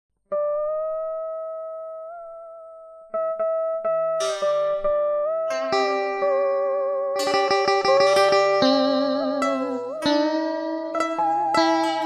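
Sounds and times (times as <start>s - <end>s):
plucked guitar notes: 0.3s - 12.0s.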